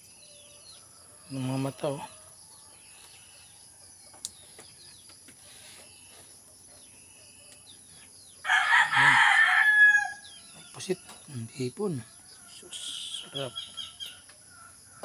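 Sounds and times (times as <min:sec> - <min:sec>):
faint chirping insects: 0:00.0 - 0:15.0
rooster crowing: 0:08.4 - 0:10.4.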